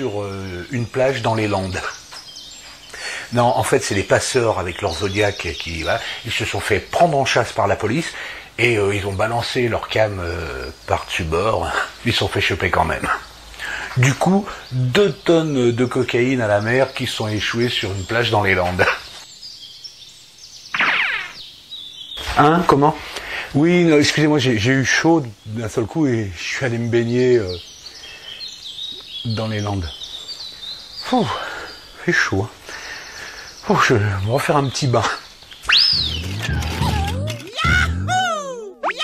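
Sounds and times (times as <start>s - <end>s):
faint bird chirps: 0.0s - 23.4s, 24.8s - 39.0s
boing-like whistle: 20.8s - 21.4s, 35.7s - 39.0s
loud sound falling in pitch: 35.7s - 39.0s.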